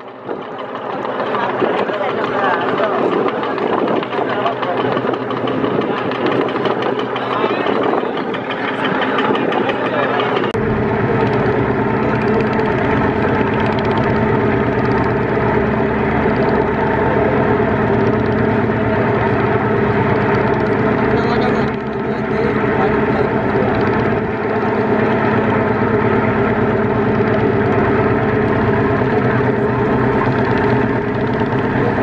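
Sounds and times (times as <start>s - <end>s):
boat diesel engine running: 0.0s - 32.0s
people's voices: 1.1s - 11.6s, 18.8s - 25.1s.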